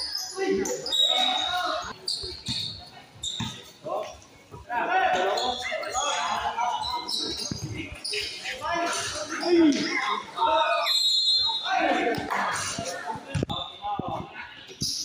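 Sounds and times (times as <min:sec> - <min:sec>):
people talking and calling out: 0:00.0 - 0:15.0.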